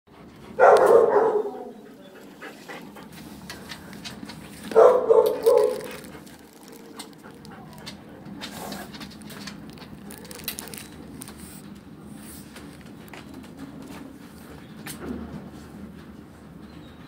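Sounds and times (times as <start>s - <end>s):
dog barking: 0.6s - 1.8s, 4.7s - 6.1s.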